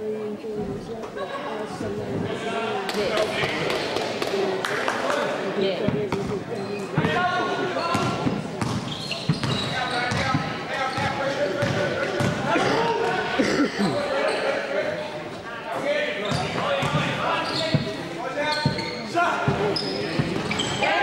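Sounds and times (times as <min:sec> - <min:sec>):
basketball bouncing on gym floor: 0:07.9 - 0:12.4.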